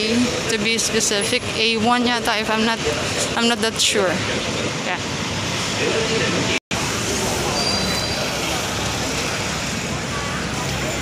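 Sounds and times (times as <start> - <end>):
passers-by talking: 0.0 - 11.0
road traffic noise: 0.0 - 11.0.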